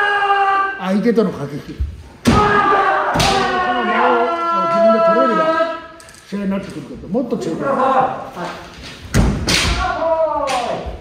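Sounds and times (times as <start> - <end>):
long kiai shout: 0.0 - 0.9, 2.2 - 6.0, 9.4 - 11.0.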